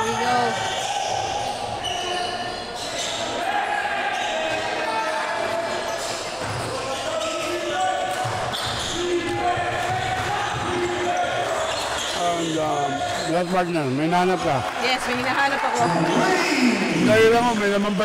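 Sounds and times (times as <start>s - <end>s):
sneaker squeaks on gym floor: 0.0s - 3.4s, 5.8s - 9.2s, 10.7s - 14.1s
basketball bouncing: 8.2s - 11.0s.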